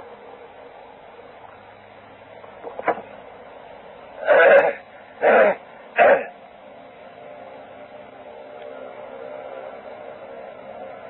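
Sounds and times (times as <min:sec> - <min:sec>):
faint hum: 0:00.0 - 0:11.0
tape hiss: 0:00.0 - 0:11.0.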